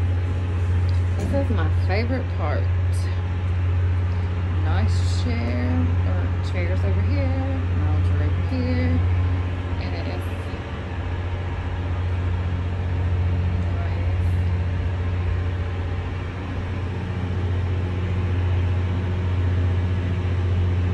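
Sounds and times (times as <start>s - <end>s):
open-air noise: 0.0s - 20.9s
ship engine low rumble: 0.0s - 20.9s.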